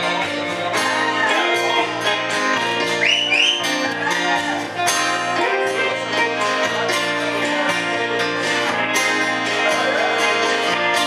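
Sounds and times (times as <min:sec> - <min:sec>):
live band playing: 0:00.0 - 0:11.0
strummed guitars: 0:00.0 - 0:11.0.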